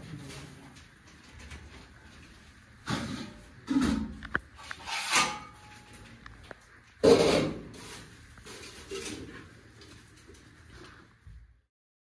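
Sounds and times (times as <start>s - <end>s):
rubbing scrape: 4.6s - 5.7s.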